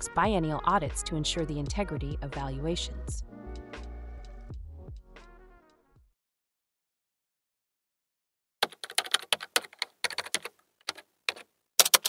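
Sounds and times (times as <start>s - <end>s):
keyboard typing: 8.6s - 12.0s.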